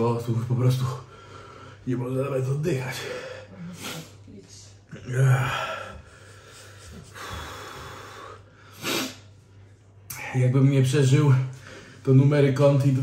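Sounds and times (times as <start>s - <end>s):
man breathing hard: 5.4s - 9.3s.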